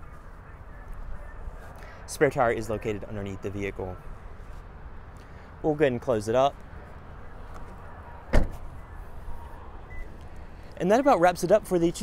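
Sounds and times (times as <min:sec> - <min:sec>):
car liftgate slamming shut: 0:08.3 - 0:08.7.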